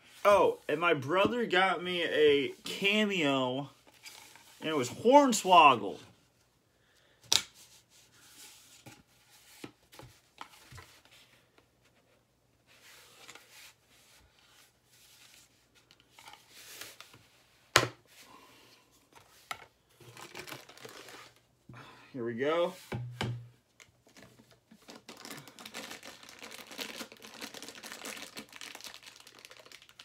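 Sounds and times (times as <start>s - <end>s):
cardboard tearing and crinkling: 20.1s - 21.4s, 24.7s - 30.0s.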